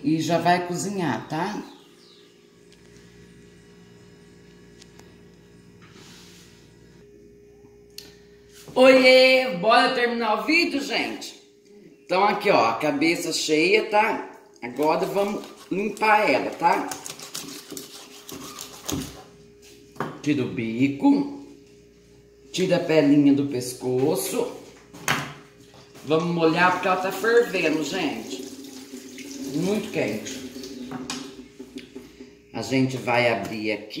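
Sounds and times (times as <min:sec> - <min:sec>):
faint low hum: 0:00.0 - 0:17.5
knife cutting through meat: 0:16.9 - 0:19.2.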